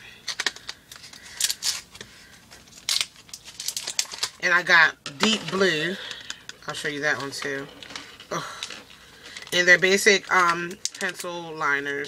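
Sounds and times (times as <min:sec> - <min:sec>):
packaging crinkling and tearing: 0:00.2 - 0:04.5, 0:05.2 - 0:11.5.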